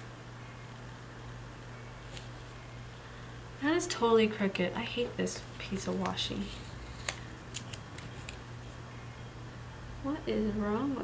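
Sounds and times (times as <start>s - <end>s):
tape peeling from paper: 6.4s - 8.4s.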